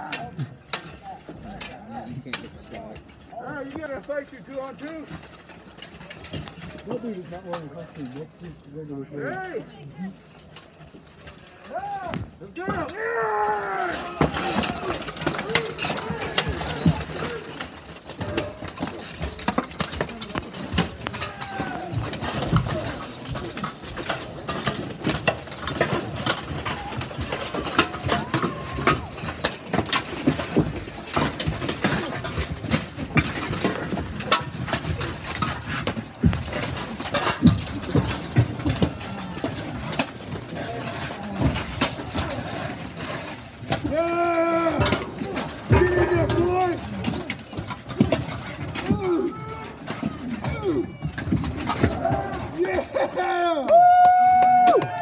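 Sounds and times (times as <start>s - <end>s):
armour and weapons clanking: 0.0s - 55.0s
people shouting: 11.5s - 18.7s, 21.1s - 23.0s, 25.8s - 29.5s, 43.8s - 47.3s, 48.8s - 55.0s.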